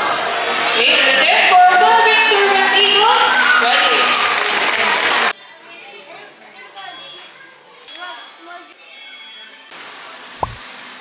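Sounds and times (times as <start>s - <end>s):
indistinct chatter of voices: 3.9s - 9.7s.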